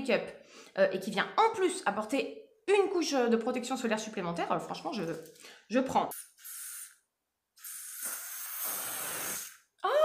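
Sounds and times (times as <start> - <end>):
sunscreen spray hissing: 6.1 - 7.0, 7.6 - 9.7.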